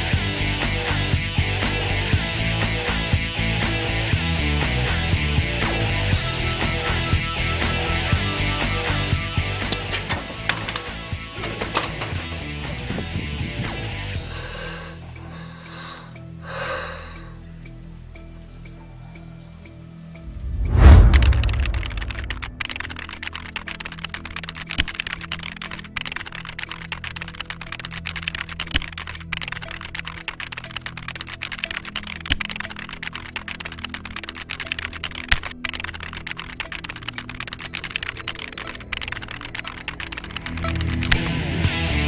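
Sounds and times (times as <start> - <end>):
background music low notes: 0.0 - 42.0
typewriter clicks sound effect: 20.5 - 41.3.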